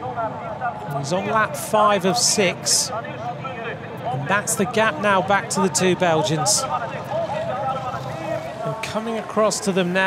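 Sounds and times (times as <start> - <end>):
commentary voice: 0.0 - 10.0
person talking: 0.9 - 2.9.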